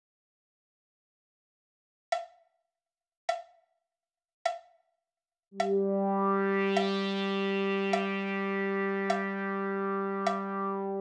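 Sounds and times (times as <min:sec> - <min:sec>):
struck percussion notes: 0:05.6 - 0:11.0.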